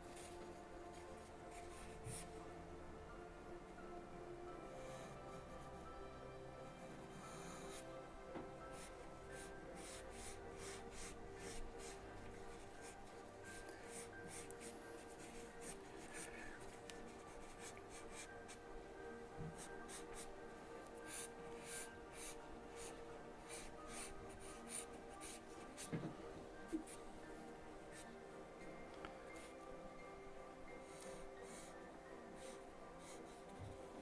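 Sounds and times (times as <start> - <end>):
quiet background music: 0.0 - 34.0
charcoal pencil scratching on paper: 8.7 - 18.6, 23.5 - 25.9.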